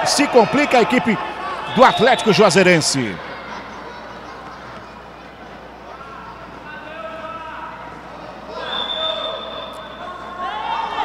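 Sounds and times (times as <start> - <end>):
players and spectators shouting: 0.0 - 3.4, 6.1 - 11.0
referee's whistle blast: 1.6 - 2.6, 8.6 - 10.1.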